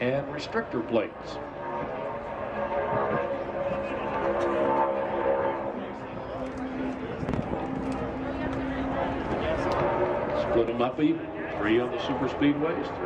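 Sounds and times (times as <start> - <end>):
race car engine at full throttle: 0.0 - 13.0.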